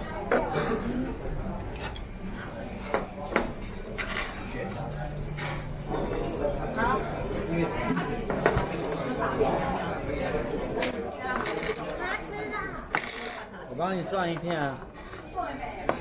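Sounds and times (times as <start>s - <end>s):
restaurant chatter: 0.0s - 16.0s.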